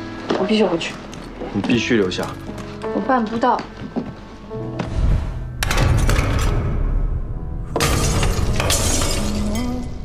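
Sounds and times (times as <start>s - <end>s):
glass shattering: 7.8s - 10.0s.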